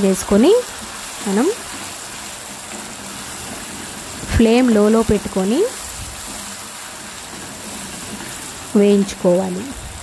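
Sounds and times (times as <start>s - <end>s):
chutney sizzling in oil: 0.0s - 10.0s.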